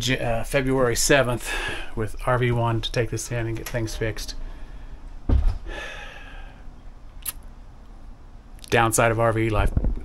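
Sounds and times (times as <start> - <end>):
man sighing: 5.6 - 6.6.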